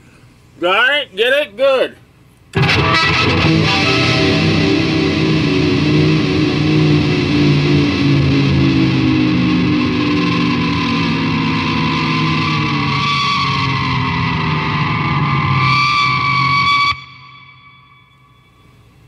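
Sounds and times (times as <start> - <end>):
distorted electric guitar: 2.5 - 19.0.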